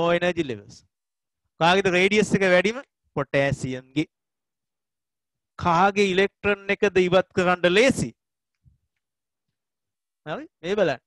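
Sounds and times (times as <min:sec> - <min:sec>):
man speaking: 0:00.0 - 0:00.8, 0:01.6 - 0:04.2, 0:05.6 - 0:08.2, 0:10.3 - 0:11.0.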